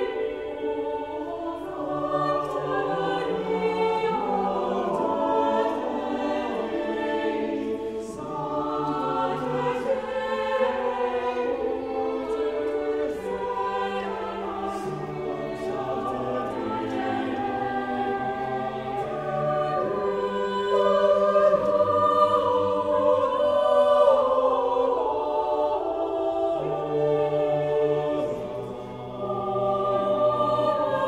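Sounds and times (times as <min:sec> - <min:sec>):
church choir singing: 0:00.0 - 0:31.0.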